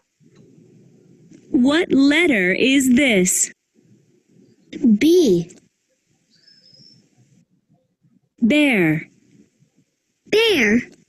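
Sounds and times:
faint high-pitched chirp: 6.3 - 7.9.

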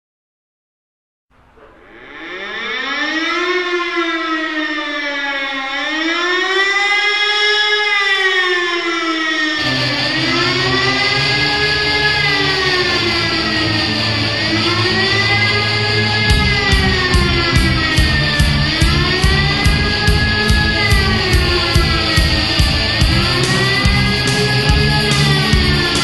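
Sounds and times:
siren-like wail: 1.4 - 26.0.

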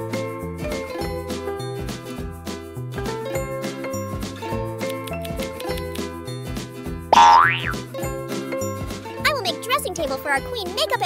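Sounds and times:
bright children's music: 3.0 - 11.0
cartoon boing sound effect: 7.2 - 7.8.

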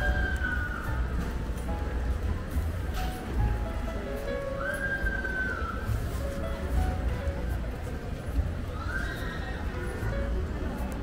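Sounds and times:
music playing: 0.0 - 8.5
market hubbub: 0.0 - 11.0.

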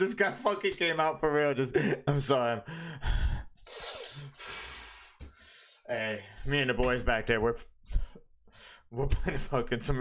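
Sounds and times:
man breathing heavily: 2.6 - 6.5.

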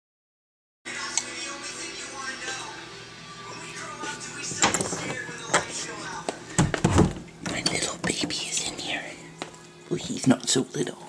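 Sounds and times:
person whispering: 7.5 - 9.2.

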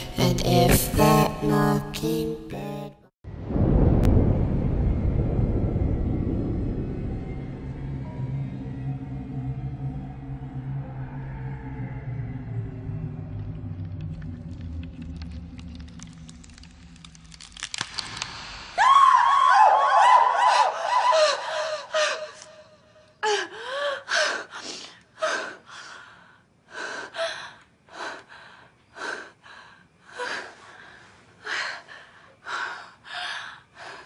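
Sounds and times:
high wavering scream: 18.8 - 22.8
woman panting and gasping: 20.4 - 34.0.

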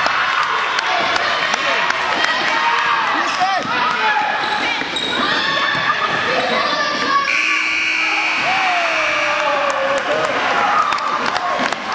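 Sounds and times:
voices echoing in a hall: 0.0 - 11.9
sneakers squeaking: 3.6 - 6.3.

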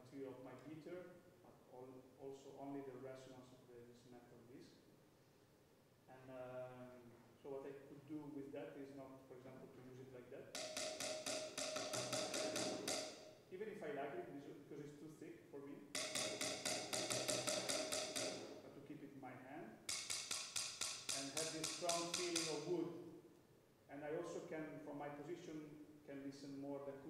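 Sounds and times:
mallet striking steel pan on snare: 10.6 - 13.4, 16.0 - 18.6, 19.9 - 22.7.

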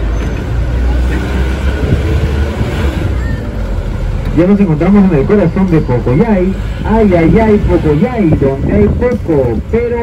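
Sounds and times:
vehicle engine rumble: 0.0 - 10.0
wind noise on microphone: 1.4 - 3.5, 6.6 - 10.0.

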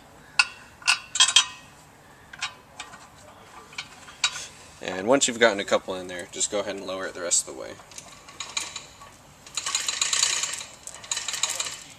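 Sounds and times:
metal bolt clinking against flange: 0.4 - 1.7, 2.3 - 4.5, 7.8 - 11.8.

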